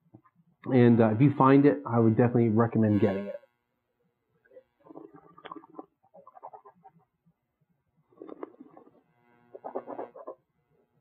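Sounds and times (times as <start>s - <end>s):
wine sipped and gurgled: 4.4s - 7.1s, 8.1s - 9.0s.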